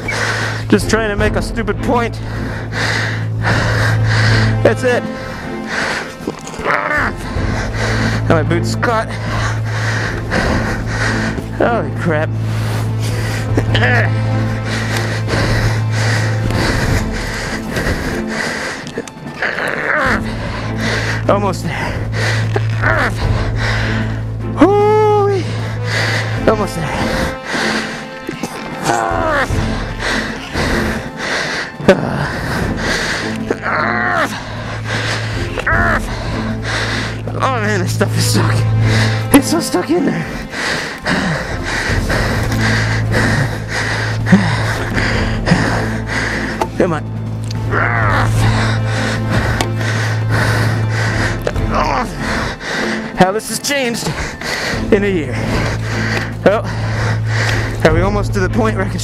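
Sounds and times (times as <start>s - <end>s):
man breathing hard and gasping: 2.2s - 8.3s, 9.1s - 11.6s, 12.3s - 24.5s, 25.4s - 33.6s, 34.2s - 37.4s, 38.6s - 39.3s, 40.2s - 53.2s, 54.0s - 57.8s.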